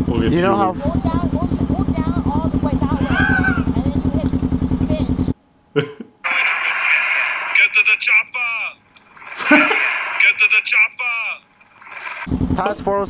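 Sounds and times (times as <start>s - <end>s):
motorcycle engine idling: 0.0s - 5.3s
people talking: 0.1s - 6.0s, 6.7s - 8.8s, 9.4s - 11.4s, 12.6s - 13.0s.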